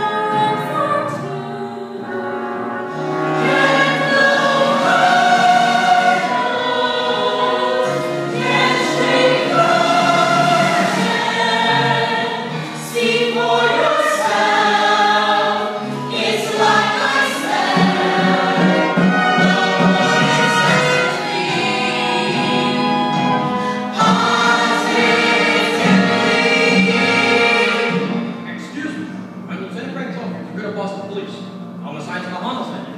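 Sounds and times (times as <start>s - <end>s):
chorus singing together: 0.0s - 28.5s.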